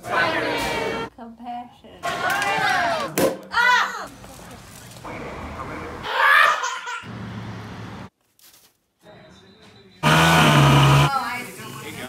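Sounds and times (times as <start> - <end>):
high-pitched laughter: 6.1 - 7.1.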